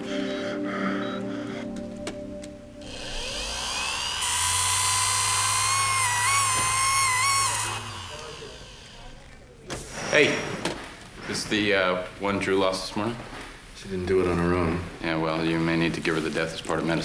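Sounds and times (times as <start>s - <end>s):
electric surgical tool whining: 2.8s - 9.5s.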